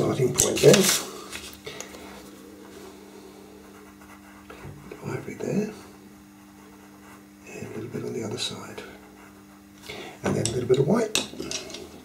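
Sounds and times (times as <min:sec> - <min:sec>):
low hum: 0:01.0 - 0:12.0
pencil scratching on paper: 0:02.7 - 0:10.0.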